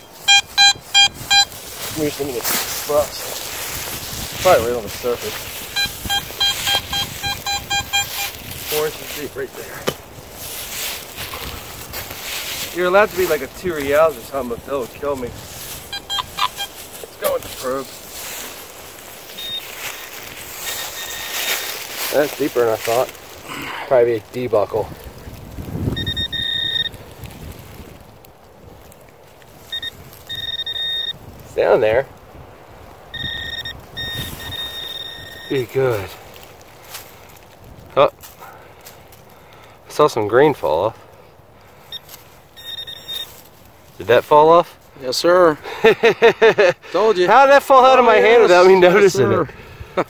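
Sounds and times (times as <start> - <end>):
metal detector beeping: 0.0 - 3.2, 4.4 - 9.3, 15.7 - 18.5, 19.3 - 23.0, 25.9 - 27.0, 29.7 - 31.2, 33.1 - 36.1, 41.9 - 43.4
rustling of dirt: 0.0 - 50.0.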